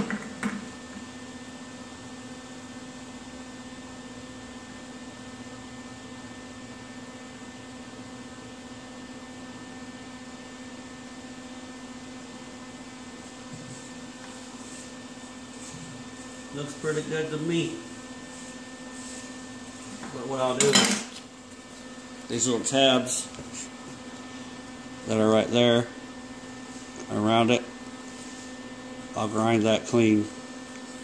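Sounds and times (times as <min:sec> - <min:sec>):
fan noise: 0:00.0 - 0:31.0
steady machine hum: 0:00.0 - 0:31.0.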